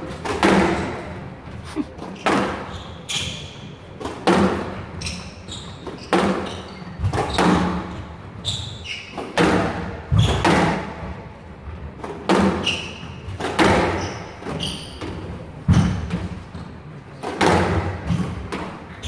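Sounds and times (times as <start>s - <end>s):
squash ball hitting rackets and walls: 0.0s - 1.2s, 2.0s - 19.0s
shoes squeaking on court floor: 0.5s - 9.4s, 12.4s - 17.0s.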